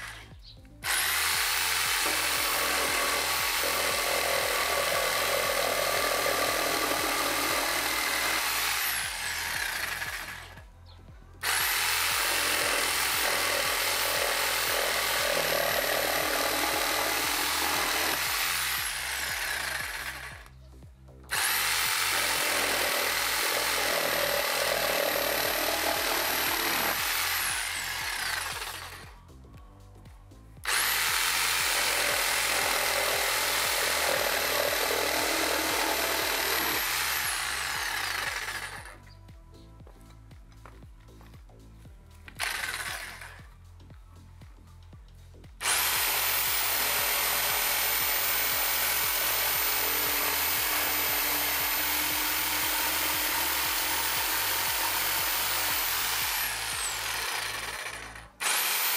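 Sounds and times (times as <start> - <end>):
jigsaw cutting wood: 0.0 - 10.6, 11.4 - 20.5, 21.3 - 29.1, 30.6 - 39.0, 42.4 - 43.4, 45.6 - 58.9.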